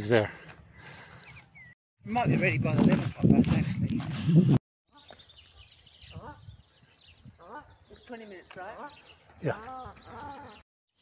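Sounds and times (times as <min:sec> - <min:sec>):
person talking: 0:02.0 - 0:04.3.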